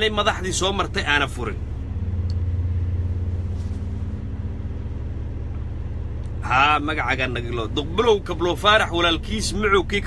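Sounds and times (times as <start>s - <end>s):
car engine hum from inside: 0.0s - 10.0s.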